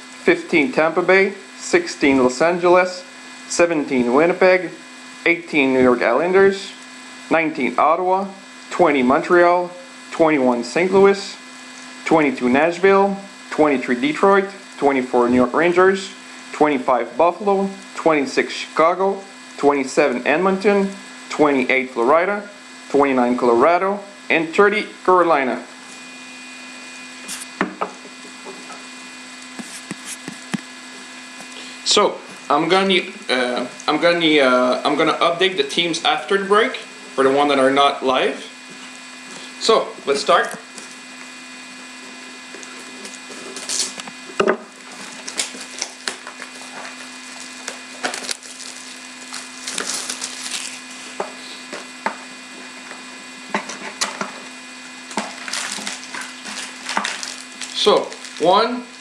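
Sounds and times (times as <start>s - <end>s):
steady low hum: 0.0s - 59.0s
plastic wrap crinkling and tearing: 42.6s - 44.1s, 44.8s - 51.2s, 55.1s - 58.7s
box and packs handled: 44.8s - 51.2s, 55.1s - 58.6s.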